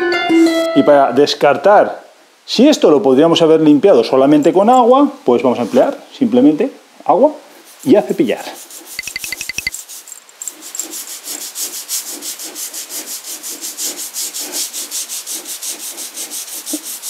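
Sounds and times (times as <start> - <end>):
toothbrush scrubbing tile grout: 7.6 - 17.0
quick ticks: 9.0 - 9.7.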